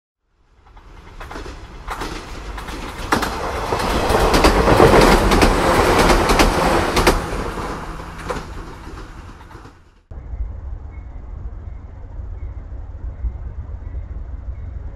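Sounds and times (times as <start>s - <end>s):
train rumbling past: 0.3s - 14.9s
wheel clicks over rail joints: 0.6s - 9.9s.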